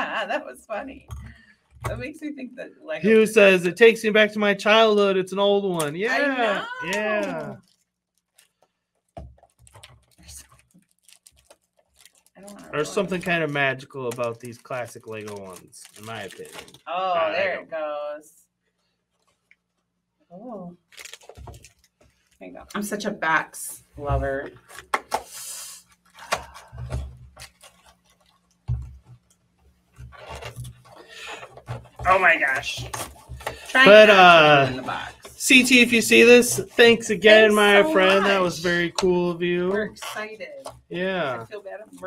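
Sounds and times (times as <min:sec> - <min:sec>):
fingernails scratching shrink-wrap: 0:09.4 - 0:13.2.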